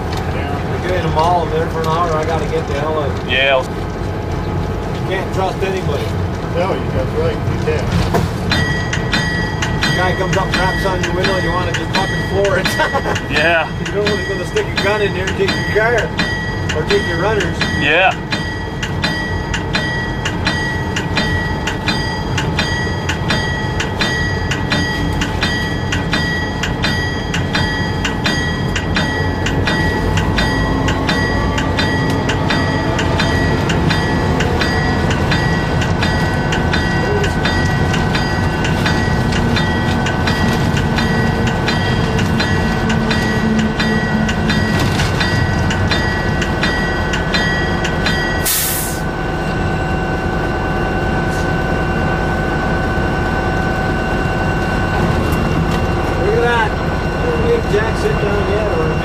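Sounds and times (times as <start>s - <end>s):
locomotive bell ringing: 0.0s - 59.0s
locomotive engine and wheels rumble: 0.0s - 59.0s
air hiss burst: 48.4s - 49.1s.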